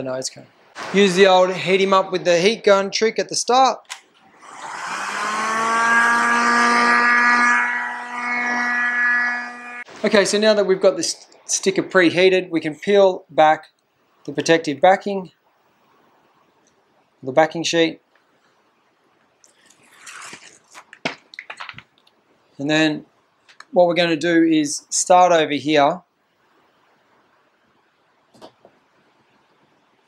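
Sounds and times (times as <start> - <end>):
heat gun fan humming: 3.8 - 10.4.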